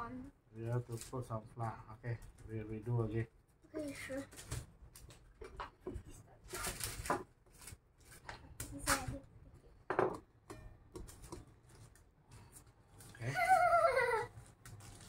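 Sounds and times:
baking paper rustling: 6.4 - 9.2, 11.1 - 15.0.

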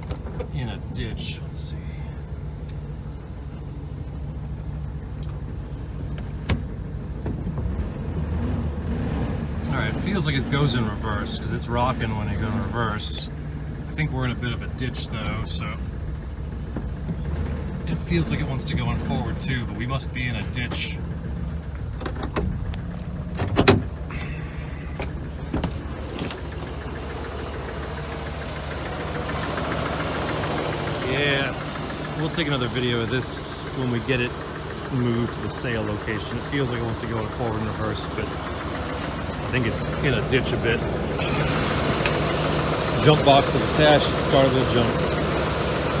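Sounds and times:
van engine idling: 0.0 - 46.0.

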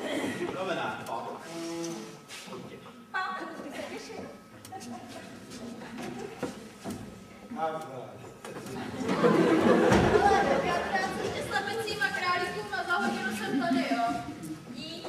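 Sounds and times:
indistinct chatter: 0.0 - 15.0
thump: 9.9 - 10.2.

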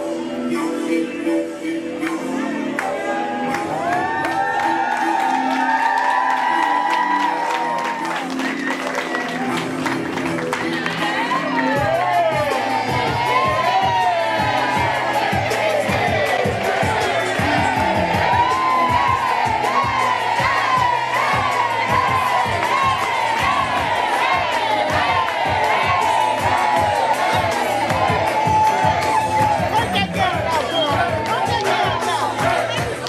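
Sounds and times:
music playing: 0.0 - 33.0
hands clapping: 2.0 - 11.4, 30.8 - 33.0
crowd cheering and shouting: 2.8 - 33.0.

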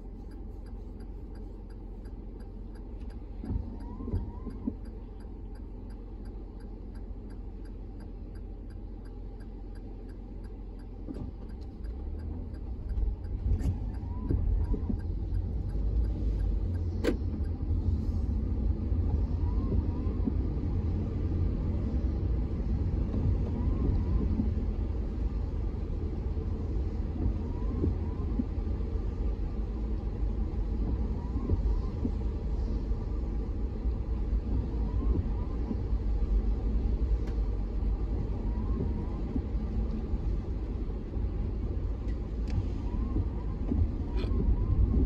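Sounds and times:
car engine rumble: 0.0 - 45.0
tyres on wet road: 0.0 - 45.0.

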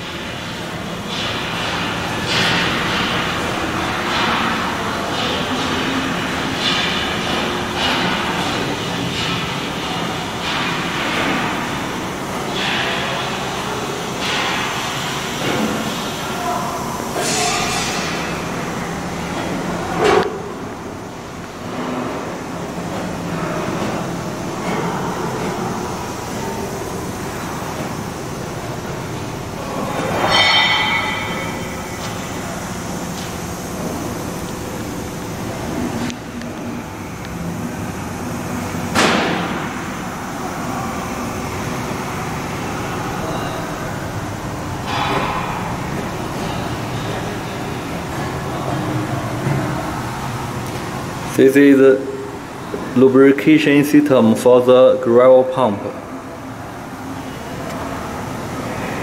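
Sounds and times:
machinery rumble and hum: 0.0 - 59.0
metallic clanks: 29.9 - 32.5.

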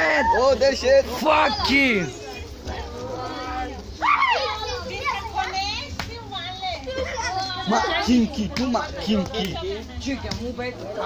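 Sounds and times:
people and children calling out: 0.0 - 9.6.

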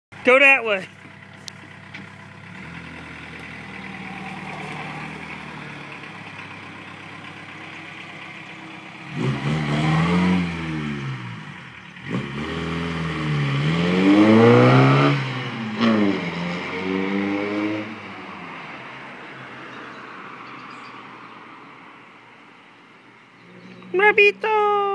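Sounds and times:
diesel engine revving and accelerating: 1.0 - 20.4.

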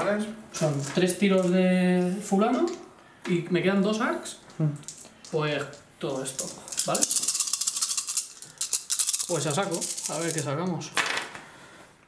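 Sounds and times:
dice rattling: 4.8 - 11.3.

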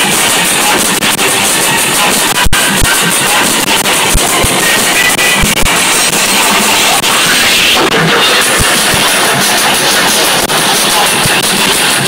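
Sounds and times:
loud drum and bass music: 0.0 - 12.0.

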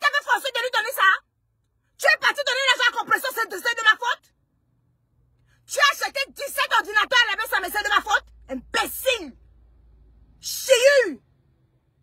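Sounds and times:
woman speaking: 0.0 - 1.2, 2.0 - 4.3, 5.7 - 9.4, 10.4 - 11.2.

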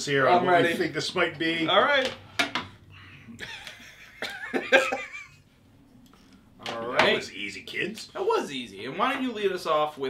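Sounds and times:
men laughing: 2.9 - 5.5.

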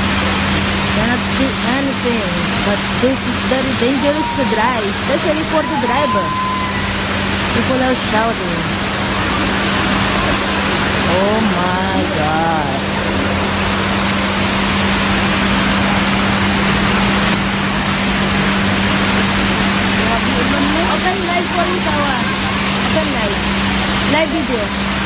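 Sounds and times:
heavy rain pouring: 0.0 - 25.0
steady low hum: 0.0 - 25.0
people calling out: 3.6 - 7.0.

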